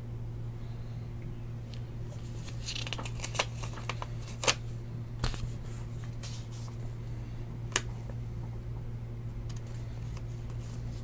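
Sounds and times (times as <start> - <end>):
steady low hum: 0.0 - 11.0
cards and packaging rustling: 2.1 - 4.6.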